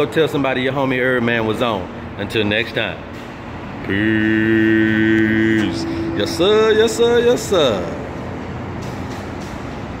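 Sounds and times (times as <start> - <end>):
traffic rumble and hiss: 0.0 - 10.0.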